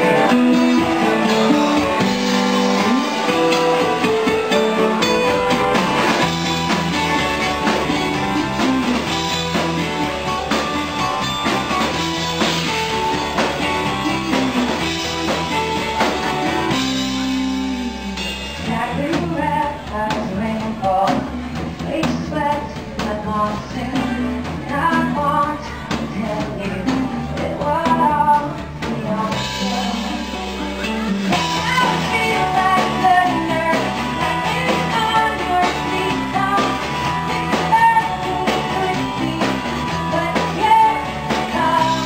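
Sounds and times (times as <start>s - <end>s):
person singing: 0.0s - 10.3s, 18.6s - 42.0s
bass guitar: 0.0s - 42.0s
drums: 0.0s - 42.0s
electric guitar: 0.0s - 42.0s.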